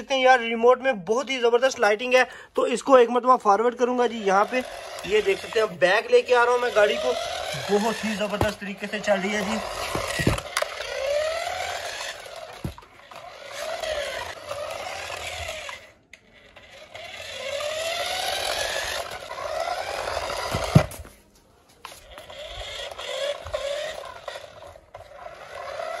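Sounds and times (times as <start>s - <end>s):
toy truck electric motor whining: 1.5s - 21.2s, 21.8s - 26.0s.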